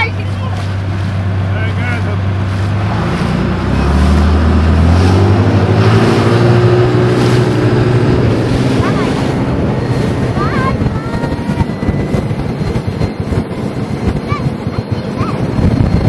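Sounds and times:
rushing water: 0:00.0 - 0:15.9
speedboat engine revving: 0:00.0 - 0:16.0
wind: 0:00.0 - 0:16.0.

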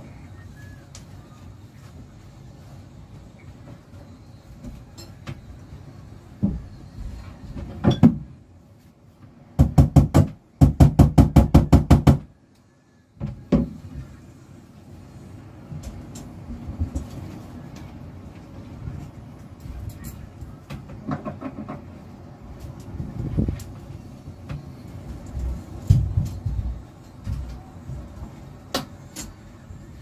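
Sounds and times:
knocking on cabinet door: 0:09.6 - 0:12.3.

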